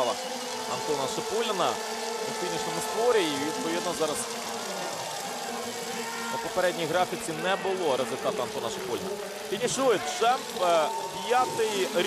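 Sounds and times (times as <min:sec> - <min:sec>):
spectator crowd noise: 0:00.0 - 0:12.0.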